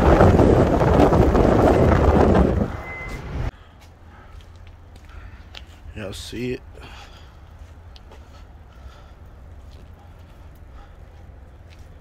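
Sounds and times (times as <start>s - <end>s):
wind and road noise from car: 0.0s - 12.0s
short high beep: 2.7s - 3.4s.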